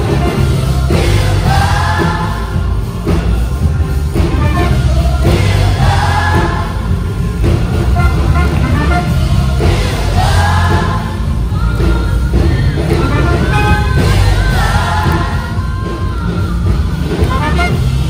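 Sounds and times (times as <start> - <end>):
choir and band worship music: 0.0 - 18.0.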